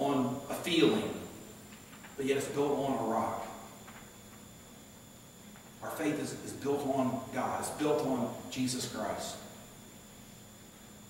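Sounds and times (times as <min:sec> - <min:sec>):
man speaking: 0:00.0 - 0:01.3, 0:02.2 - 0:03.7, 0:05.8 - 0:09.5
faint high-pitched whine: 0:00.0 - 0:11.0.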